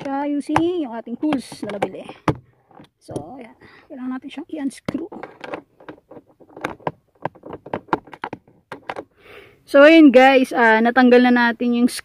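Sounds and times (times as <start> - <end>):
metal tool knocking on plastic: 0.0 - 3.2, 4.9 - 9.0.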